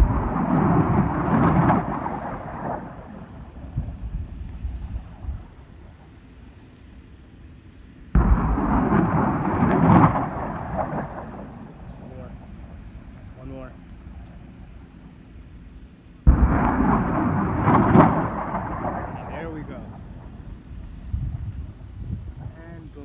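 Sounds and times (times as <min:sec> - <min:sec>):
rocket launch blast: 0:00.0 - 0:05.4, 0:08.2 - 0:13.6, 0:16.3 - 0:22.5.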